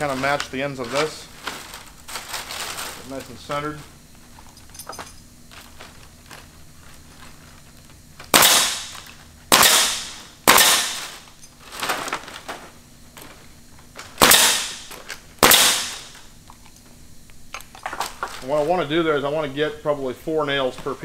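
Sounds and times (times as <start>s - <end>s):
nail gun firing: 8.3s - 11.1s, 14.2s - 16.1s.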